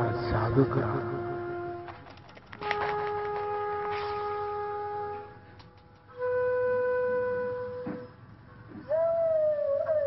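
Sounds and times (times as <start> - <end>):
wind instrument holding long note: 0.0 - 8.1.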